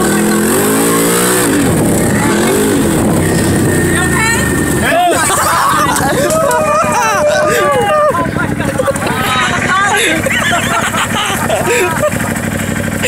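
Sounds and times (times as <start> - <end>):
off-road vehicle engine revving: 0.0 - 13.0
voices shouting: 2.0 - 12.2.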